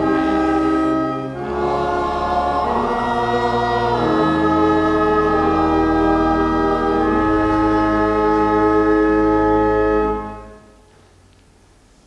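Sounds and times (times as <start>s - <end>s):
choir singing held chord: 0.0s - 10.8s
church organ chord: 0.0s - 11.0s.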